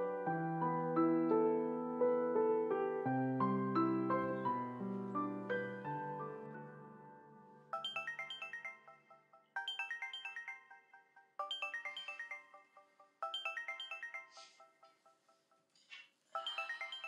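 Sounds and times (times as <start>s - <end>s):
soft piano music: 0.0s - 9.1s
phone ringtone plinking notes: 7.7s - 15.4s, 16.3s - 17.0s.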